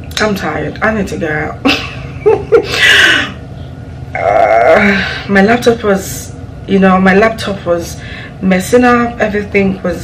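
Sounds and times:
woman groaning: 4.1 - 5.3.

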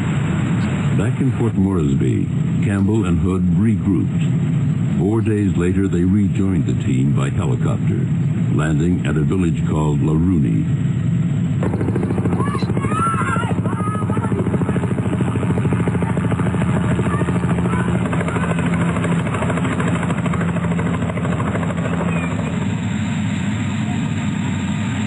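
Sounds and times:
helicopter rotor chopping: 0.0 - 25.0.

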